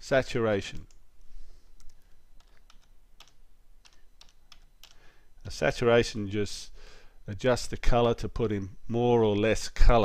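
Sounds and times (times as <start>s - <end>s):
typing on a computer keyboard: 1.8s - 5.0s.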